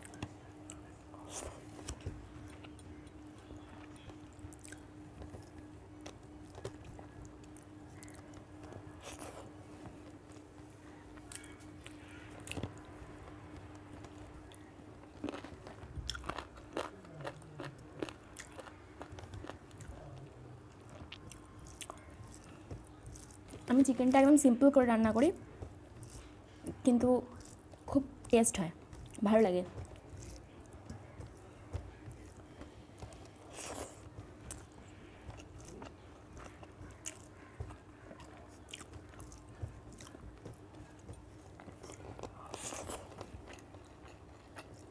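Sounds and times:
chewing food: 0.0 - 44.9.

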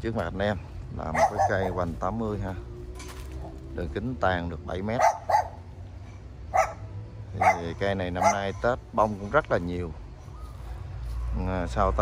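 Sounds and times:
dog barking: 1.0 - 2.0, 4.9 - 5.7, 6.5 - 8.6.

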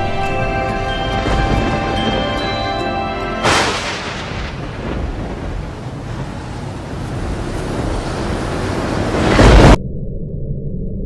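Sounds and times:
loud explosion blast: 3.4 - 5.8.

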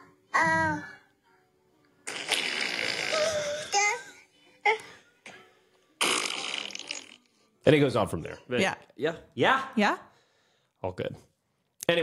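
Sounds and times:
toddler farting: 2.0 - 4.0, 6.0 - 7.3.

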